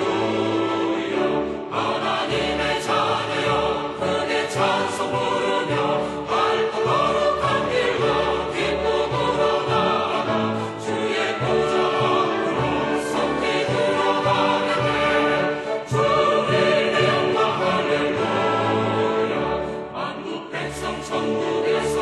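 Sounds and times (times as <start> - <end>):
choir singing sustained chords: 0.0 - 22.0
orchestral accompaniment: 0.0 - 22.0.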